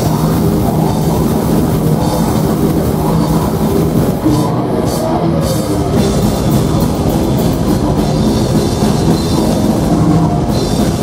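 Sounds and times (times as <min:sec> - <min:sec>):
bass guitar: 0:00.0 - 0:11.0
distorted guitars: 0:00.0 - 0:11.0
drums: 0:00.0 - 0:11.0.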